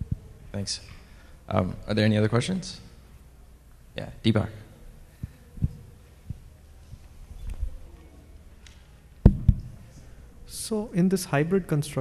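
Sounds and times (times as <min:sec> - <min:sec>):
faint room hum: 0:00.0 - 0:12.0
dull low thumps: 0:05.2 - 0:07.0.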